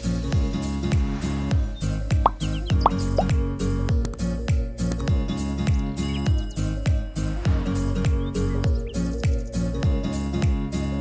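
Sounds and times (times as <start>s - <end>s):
music with bass drops: 0.0s - 11.0s.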